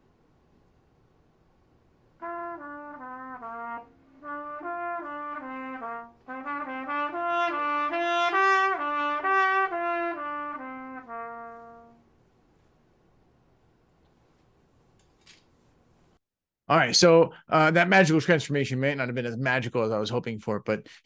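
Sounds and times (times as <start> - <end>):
trumpet playing slow melody: 2.2 - 12.1.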